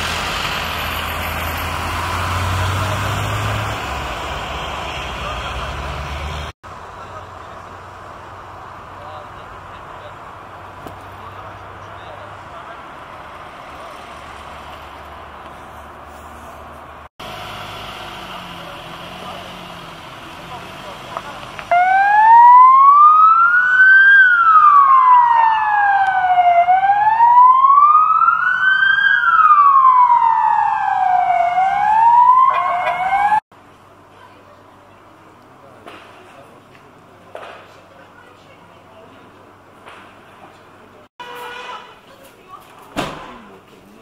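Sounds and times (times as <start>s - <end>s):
street noise: 0.0s - 44.0s
ambulance siren wailing: 21.7s - 33.4s.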